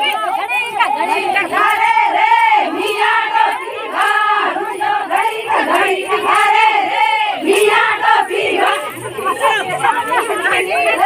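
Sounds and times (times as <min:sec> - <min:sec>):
group of women singing: 0:00.0 - 0:11.0.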